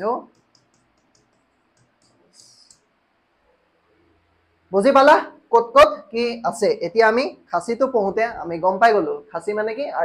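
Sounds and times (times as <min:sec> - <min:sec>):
stylus tapping on screen: 0:00.2 - 0:02.9
stylus scratching on screen: 0:00.3 - 0:02.9.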